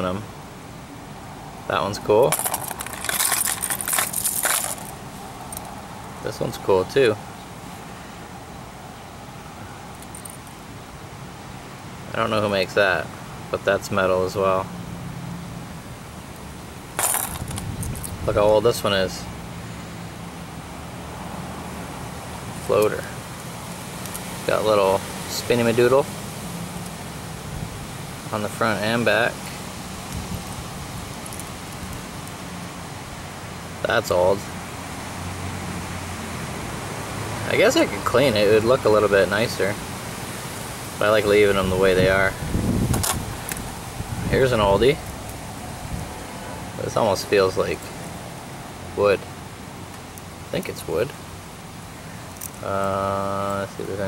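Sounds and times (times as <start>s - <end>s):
metal lures clinking and rattling: 2.2s - 5.8s, 9.9s - 10.6s, 17.0s - 18.2s, 30.4s - 32.4s.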